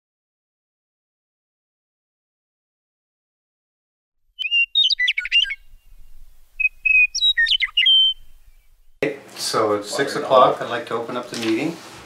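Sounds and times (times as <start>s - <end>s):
bird chirping: 4.3s - 9.0s.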